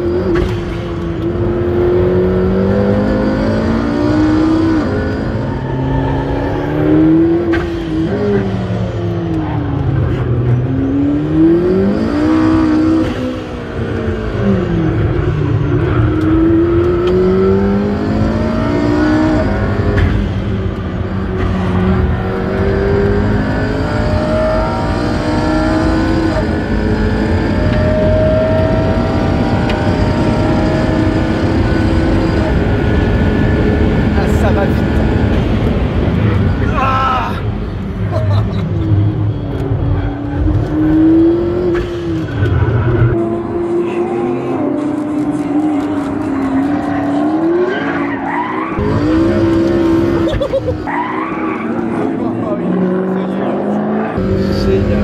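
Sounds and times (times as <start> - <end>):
car engine at full throttle: 0.0 - 55.0.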